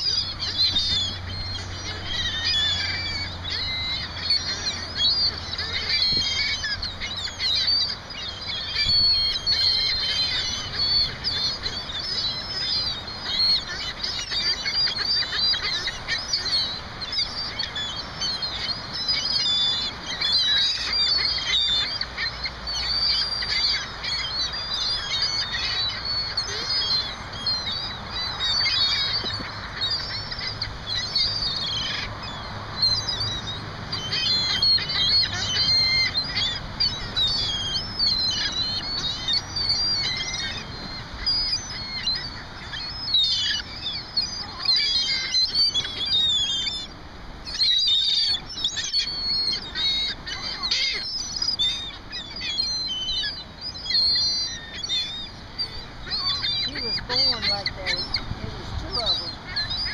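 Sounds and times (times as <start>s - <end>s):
gulls calling: 0.0s - 59.9s.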